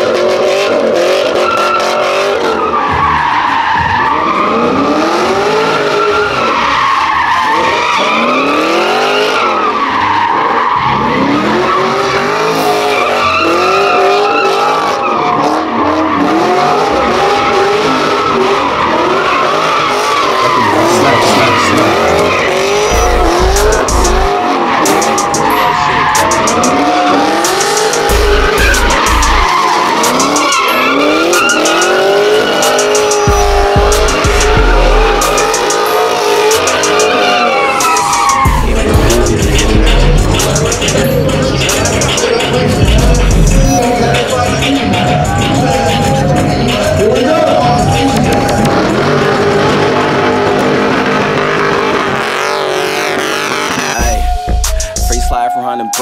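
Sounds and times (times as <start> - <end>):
car engine revving: 0.0 - 56.0
tyres squealing: 1.0 - 56.0.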